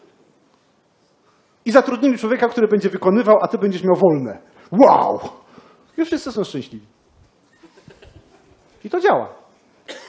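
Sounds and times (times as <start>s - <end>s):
man talking: 1.6s - 6.9s, 8.8s - 9.5s.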